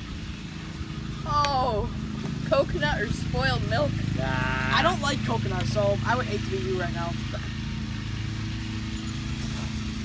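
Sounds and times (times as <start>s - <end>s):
lawn mower engine running: 0.0s - 10.0s.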